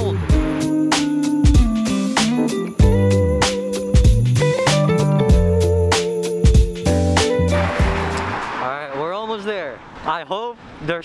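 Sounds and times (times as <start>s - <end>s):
background music: 0.0s - 8.5s
street traffic noise: 7.4s - 11.0s.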